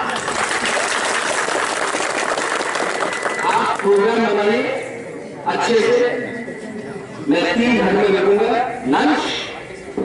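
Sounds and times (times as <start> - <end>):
crowd applauding: 0.0 - 4.0.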